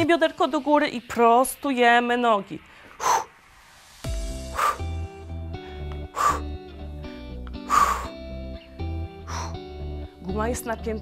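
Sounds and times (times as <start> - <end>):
workout music with bass beat: 2.9 - 9.7
woman breathing out hard: 4.4 - 6.6, 7.5 - 8.2, 9.2 - 9.6.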